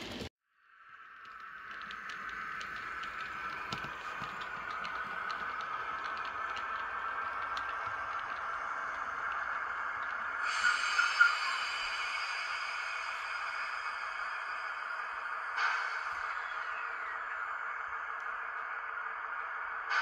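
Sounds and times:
wheels clicking over rail joins: 0.0 - 0.3, 1.2 - 11.3
model train whirring hum: 1.1 - 20.0
high multi-tone whine: 2.2 - 20.0.

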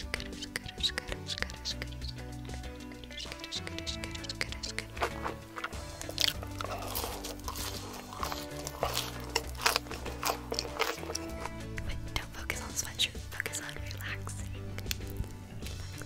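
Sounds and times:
background music with bass line: 0.0 - 16.0
crunchy chewing of fries: 3.1 - 12.0.

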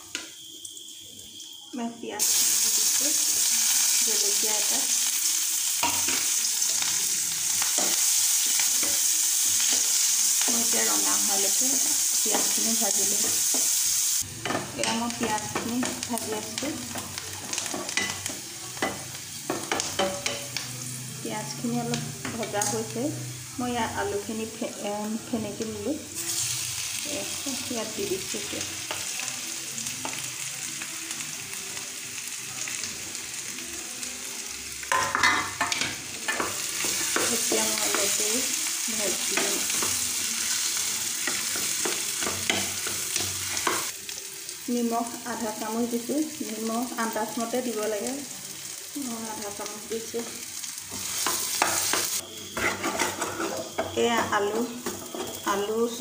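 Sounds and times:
food sizzling in a pan: 0.0 - 56.0
spatula scraping a pan: 50.9 - 55.6
plastic spoon scraping a pan: 52.6 - 53.8.

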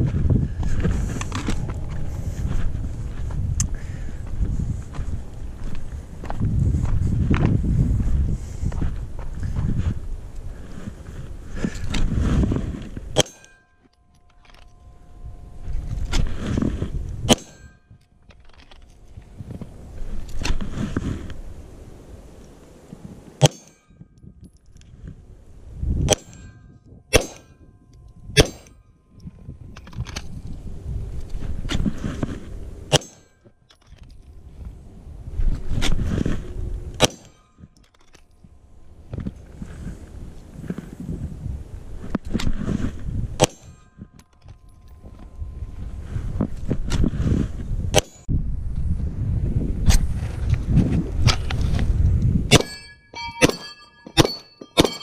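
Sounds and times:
wind rumble on microphone: 0.0 - 13.4, 14.2 - 54.2
ring of struck steel: 13.2 - 16.3, 17.3 - 18.0, 23.4 - 24.2, 26.1 - 29.0, 52.5 - 55.0
pistol shots: 27.1 - 27.4, 52.5 - 55.0.

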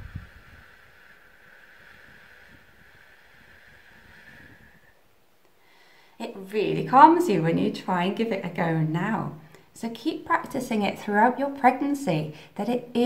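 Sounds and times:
woman exhaling slowly: 0.0 - 5.0.

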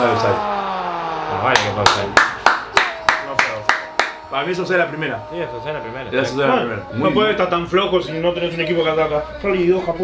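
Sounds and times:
sharp hand claps: 1.5 - 4.3.

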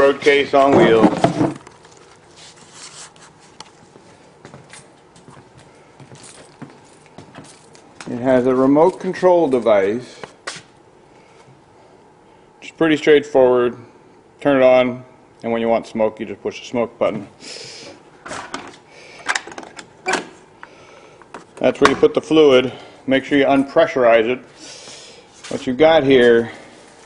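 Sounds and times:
low steady hiss: 7.0 - 27.0.

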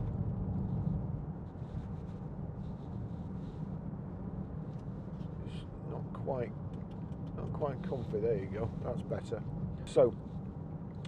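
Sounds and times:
road and engine drone in car: 0.0 - 11.0.

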